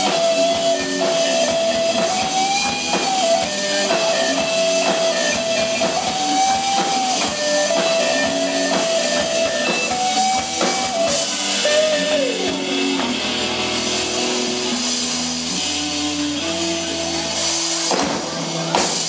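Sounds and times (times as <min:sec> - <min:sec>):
electric lead guitar bending notes: 0:00.0 - 0:18.8
drum kit: 0:00.0 - 0:19.0
rhythm guitar: 0:00.0 - 0:19.0.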